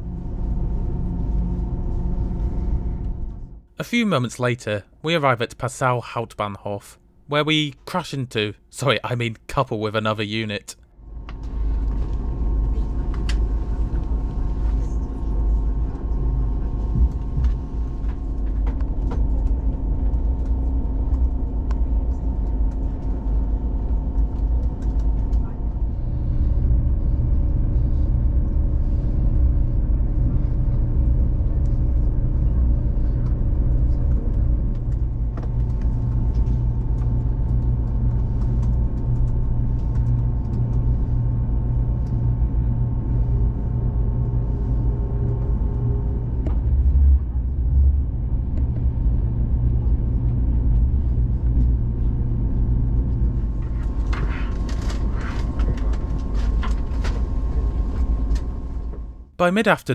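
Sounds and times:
train running gear rumble: 0:11.2 - 0:59.2.

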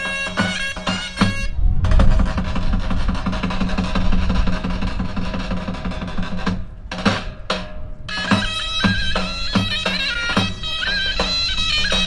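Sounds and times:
regular drumbeats: 0:00.0 - 0:12.0
bagpipes playing: 0:08.1 - 0:12.0.

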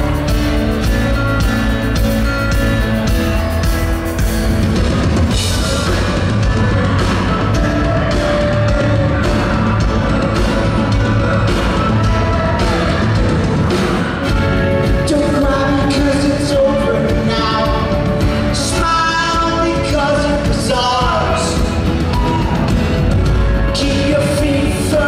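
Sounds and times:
bass guitar: 0:00.0 - 0:25.0
drum kit with cymbal hits: 0:00.0 - 0:25.0
guitars: 0:00.0 - 0:25.0.

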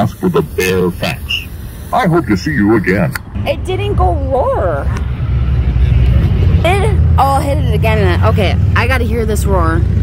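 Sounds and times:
road traffic engine rumble: 0:00.0 - 0:10.0.

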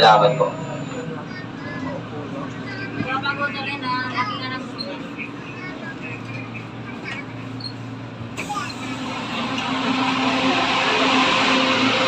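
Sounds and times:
faint voices: 0:00.0 - 0:12.0
light-rail car humming: 0:00.0 - 0:12.0
rushing noise: 0:08.4 - 0:12.0.

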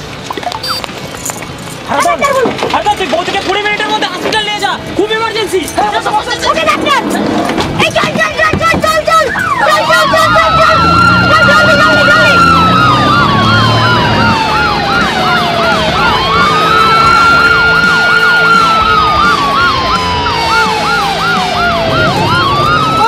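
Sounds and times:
ambulance siren wailing: 0:08.9 - 0:23.0
fast warbling siren yelp: 0:09.0 - 0:23.0.

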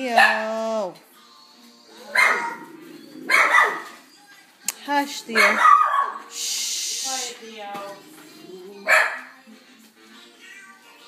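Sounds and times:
dog barking: 0:00.0 - 0:00.6, 0:02.1 - 0:02.7, 0:03.3 - 0:04.0, 0:05.3 - 0:06.3, 0:08.8 - 0:09.4
background music: 0:00.0 - 0:11.0.

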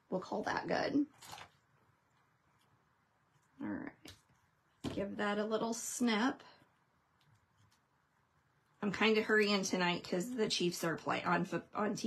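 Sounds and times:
soft rustle: 0:06.4 - 0:08.8.

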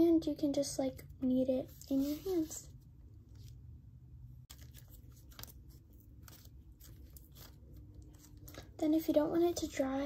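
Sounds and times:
clay handling clicks and crackles: 0:04.4 - 0:08.8.

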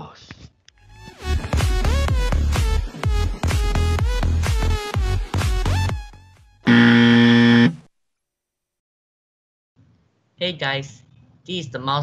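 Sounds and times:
dance music: 0:01.0 - 0:06.8
electronic buzzer warning tone: 0:06.6 - 0:07.8.

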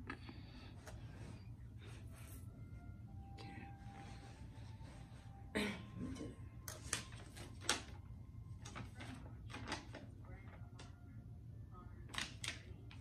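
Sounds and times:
paper rustling and crackling: 0:06.7 - 0:10.9, 0:12.1 - 0:13.0.

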